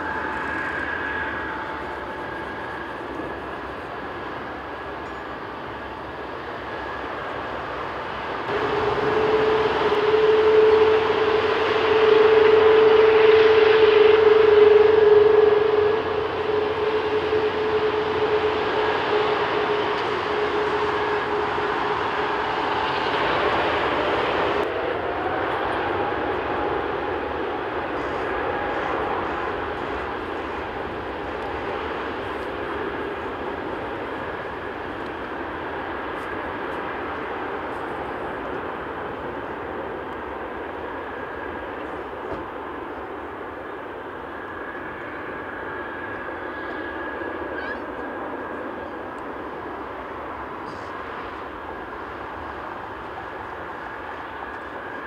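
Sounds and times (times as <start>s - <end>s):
jet engines at take-off power: 0.0s - 55.0s
rising jet whine: 0.0s - 55.0s.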